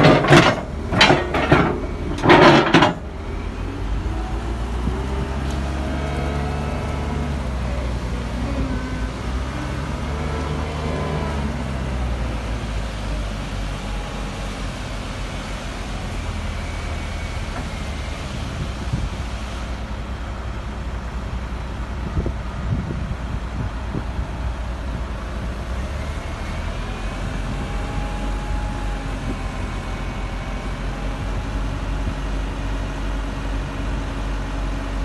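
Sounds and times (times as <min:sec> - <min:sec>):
diesel engine running: 0:00.0 - 0:35.0
engine whine: 0:00.0 - 0:35.0.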